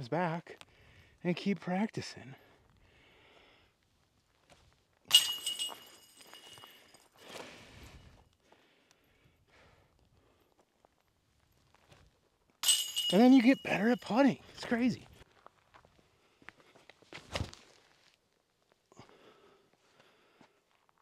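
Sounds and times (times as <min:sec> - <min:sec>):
chains jingling and ringing: 0:05.1 - 0:07.0, 0:12.6 - 0:14.2
golf disc striking metal chains: 0:05.1 - 0:07.2, 0:12.6 - 0:14.3.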